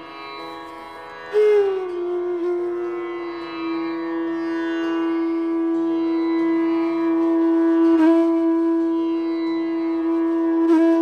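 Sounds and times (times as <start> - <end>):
bamboo flute holding long note: 1.3 - 11.0.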